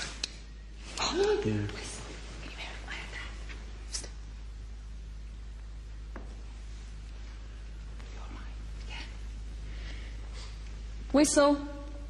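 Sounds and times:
steady low hum: 0:00.0 - 0:12.0
faint whispering: 0:00.9 - 0:04.1, 0:08.0 - 0:09.3.

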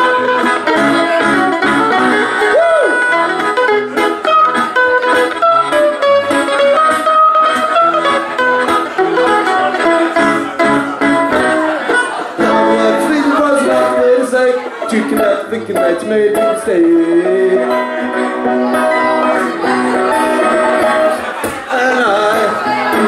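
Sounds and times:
amplified mandolin melody: 0:00.0 - 0:23.0
strummed band accompaniment: 0:00.0 - 0:23.0.

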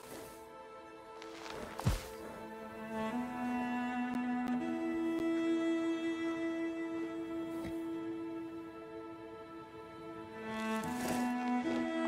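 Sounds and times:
sustained bowed strings: 0:00.0 - 0:12.0.

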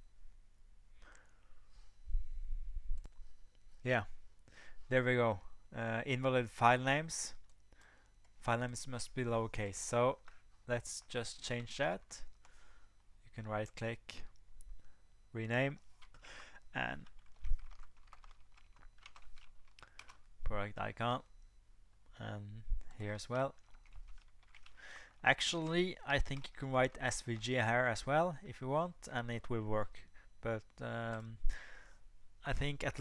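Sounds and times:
keyboard typing: 0:15.4 - 0:20.3, 0:22.9 - 0:27.6.

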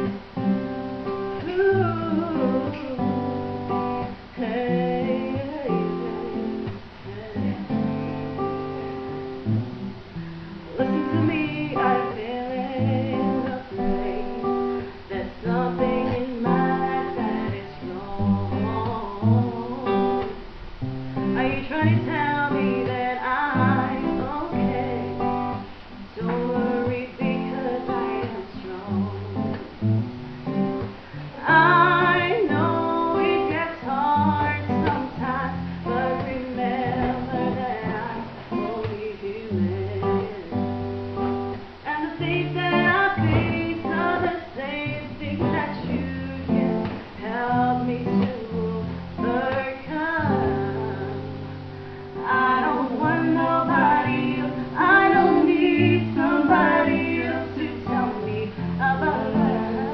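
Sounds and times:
acoustic guitar strumming: 0:00.0 - 0:59.9.

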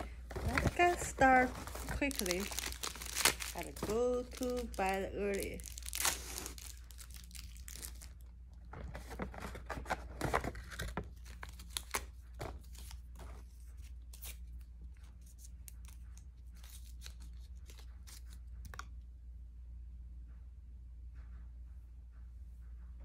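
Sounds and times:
wrappers torn and crinkled: 0:00.0 - 0:08.3, 0:10.6 - 0:13.0.

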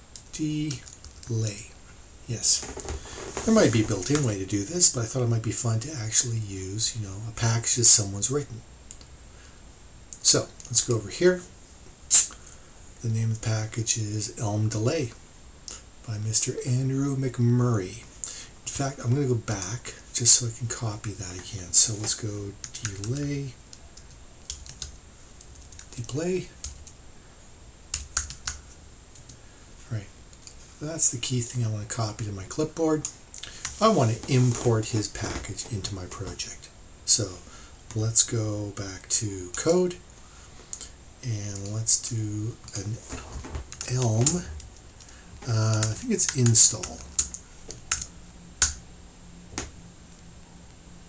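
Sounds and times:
keyboard typing: 0:27.9 - 0:28.6.

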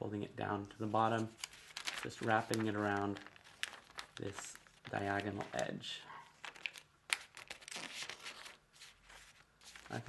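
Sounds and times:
paper crinkling as it is folded: 0:00.9 - 0:05.7, 0:06.4 - 0:10.0.

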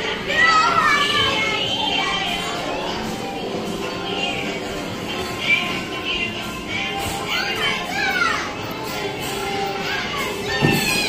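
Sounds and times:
background chatter: 0:00.0 - 0:11.0
children calling and squealing: 0:00.0 - 0:11.0.

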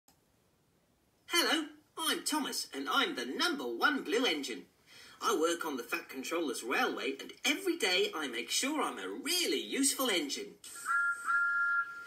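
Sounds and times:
man speaking in cartoon voice: 0:01.3 - 0:10.6.

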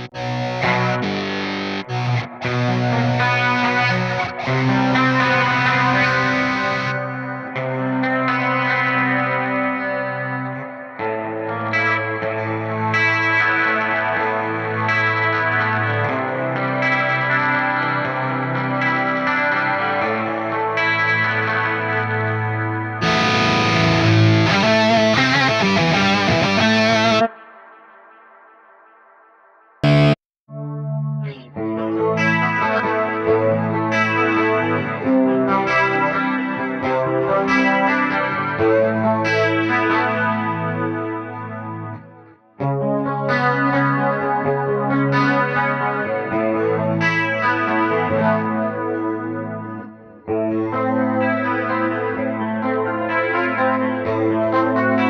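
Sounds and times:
electric guitar chords: 0:00.0 - 0:28.2, 0:29.8 - 0:55.0.

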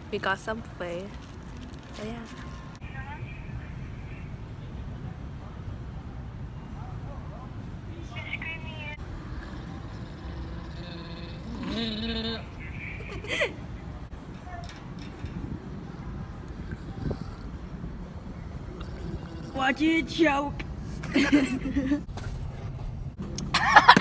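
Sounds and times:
person making wordless vocal sounds: 0:16.4 - 0:17.8, 0:18.7 - 0:20.1.

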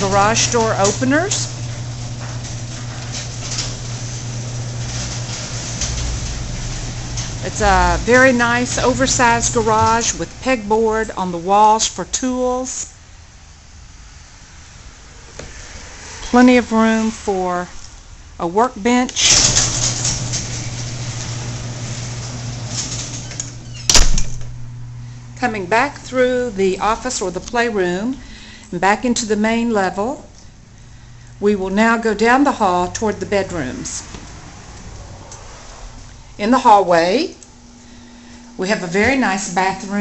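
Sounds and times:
garage door opener drone: 0:00.0 - 0:11.5, 0:19.0 - 0:29.4, 0:30.0 - 0:40.0
camcorder hum and hiss: 0:19.0 - 0:40.0.

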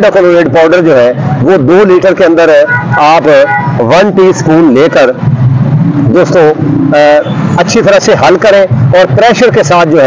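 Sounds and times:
man talking: 0:00.0 - 0:05.3, 0:06.0 - 0:10.0.

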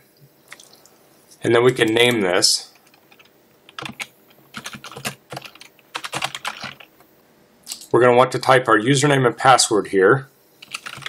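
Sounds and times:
keyboard typing: 0:01.8 - 0:07.0, 0:10.6 - 0:11.0.

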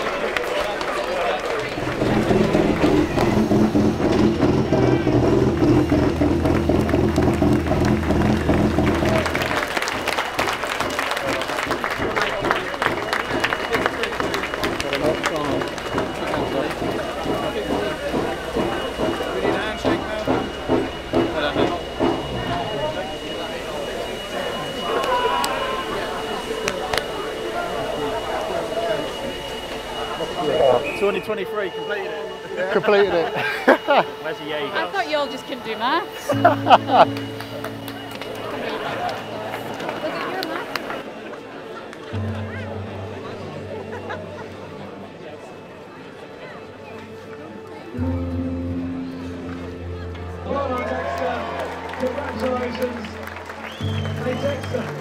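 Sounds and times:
crowd clapping and cheering: 0:00.0 - 0:31.7, 0:32.9 - 0:55.0
racing car engine running: 0:01.6 - 0:25.0
excited voices: 0:21.3 - 0:31.4.

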